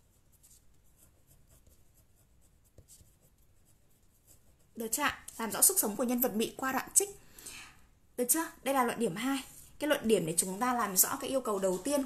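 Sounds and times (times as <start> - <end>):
pen scratching on paper: 0.0 - 6.0.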